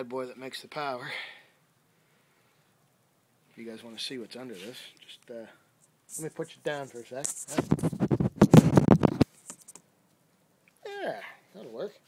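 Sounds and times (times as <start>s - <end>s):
camera handling noise: 7.2s - 9.8s.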